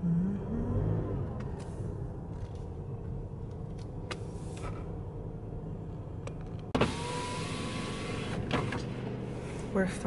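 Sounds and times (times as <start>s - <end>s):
car engine and road rumble: 0.0s - 10.0s.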